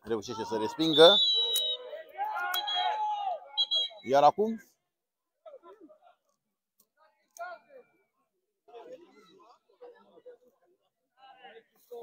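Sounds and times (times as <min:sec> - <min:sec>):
referee's whistle blasts: 0:00.7 - 0:04.3.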